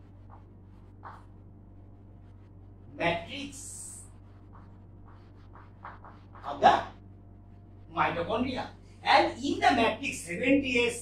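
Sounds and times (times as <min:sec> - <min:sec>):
chalk scratching on chalkboard: 0:04.4 - 0:06.6.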